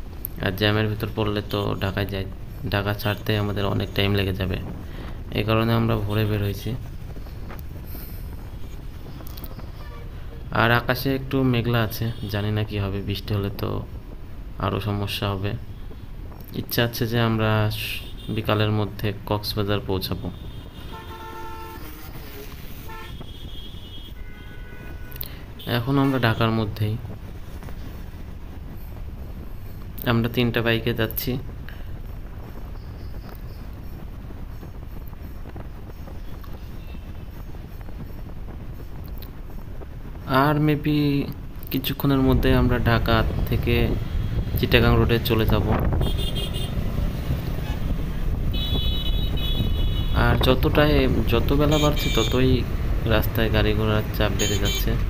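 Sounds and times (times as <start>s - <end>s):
wind noise: 0.0s - 11.6s, 26.3s - 55.0s
motorcycle road rumble: 0.0s - 55.0s
wind on microphone: 6.2s - 10.0s, 42.3s - 53.1s
vehicle horn honking: 9.7s - 10.4s, 20.2s - 26.4s, 46.0s - 46.8s, 48.5s - 50.3s, 51.6s - 52.5s, 54.4s - 55.0s
motorcycle engine rumble: 40.9s - 55.0s.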